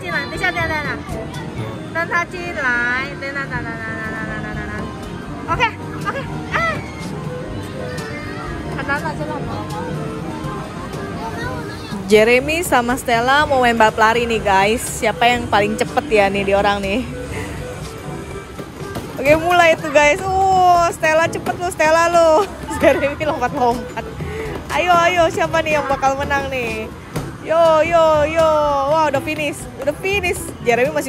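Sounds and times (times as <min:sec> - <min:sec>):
arcade hubbub: 0:00.0 - 0:31.0.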